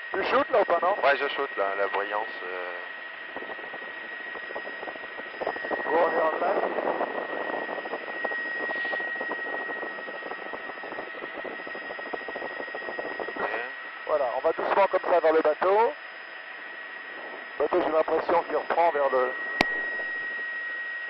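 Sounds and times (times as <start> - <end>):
constant high whine: 0.0 - 21.0.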